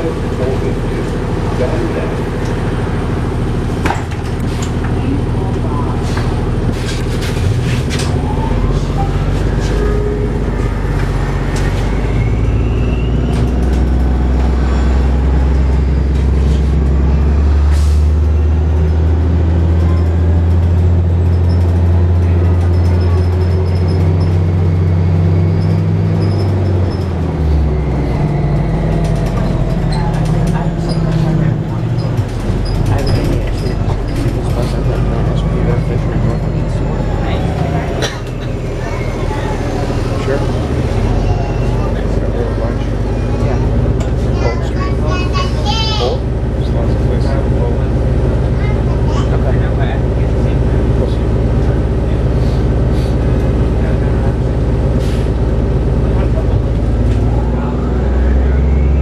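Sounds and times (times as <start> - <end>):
bus diesel engine drone: 0.0 - 59.0
bus body clicks and rattles: 3.8 - 8.2, 28.3 - 35.4.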